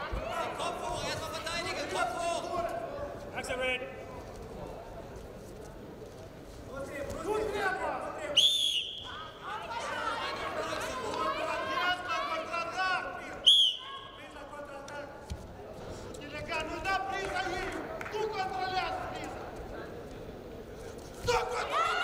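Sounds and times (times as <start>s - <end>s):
referee whistle blasts: 8.4s - 9.2s, 13.4s - 14.2s.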